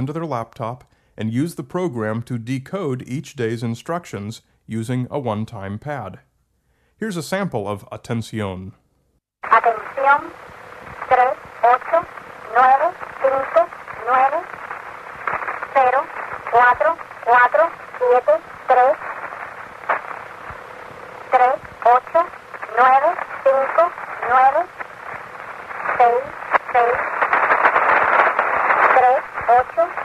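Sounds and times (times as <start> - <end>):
radio static hiss: 9.4 - 30.0
radio voice reading digits: 9.4 - 30.0.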